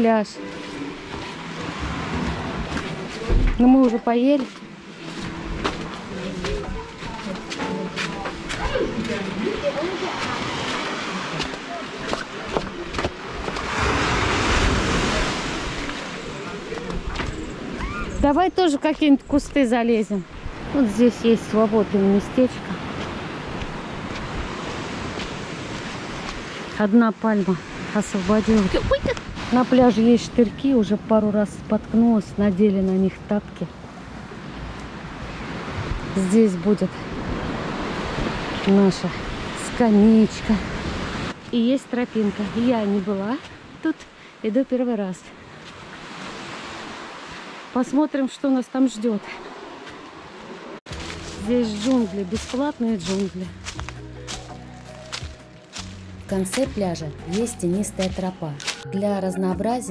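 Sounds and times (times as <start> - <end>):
waves washing on a beach: 0.0 - 18.3, 19.8 - 32.4, 33.7 - 53.8
surf washing onto beach: 5.0 - 17.9
wind buffeting microphone: 27.6 - 33.0.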